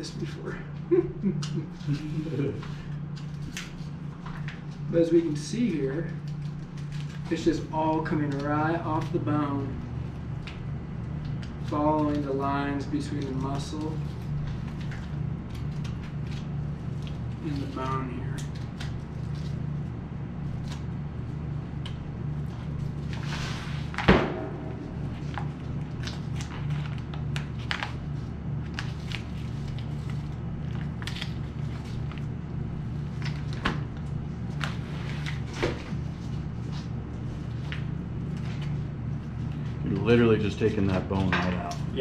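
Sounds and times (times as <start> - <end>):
steady low hum: 0.0 - 42.0
sharp knock: 24.1 - 25.2.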